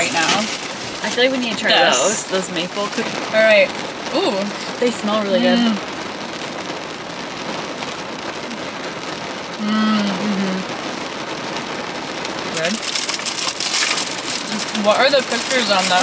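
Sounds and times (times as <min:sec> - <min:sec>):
rain on car roof: 0:00.0 - 0:16.0
snack packaging rustling: 0:12.6 - 0:16.0.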